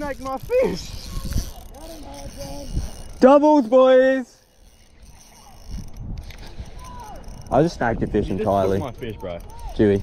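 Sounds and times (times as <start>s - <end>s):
fishing reel rumbling and knocking: 0.0s - 10.0s.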